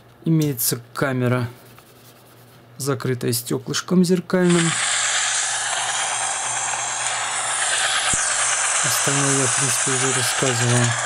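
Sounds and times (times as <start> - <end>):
recording hiss: 4.4 - 11.0.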